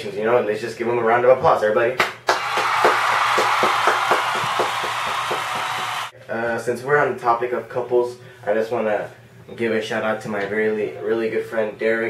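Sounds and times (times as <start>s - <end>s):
crowd applauding: 2.2s - 6.1s.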